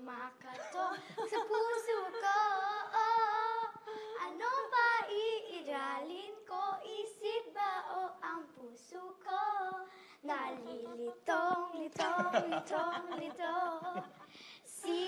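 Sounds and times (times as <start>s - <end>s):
girl singing unaccompanied: 0.0s - 15.0s.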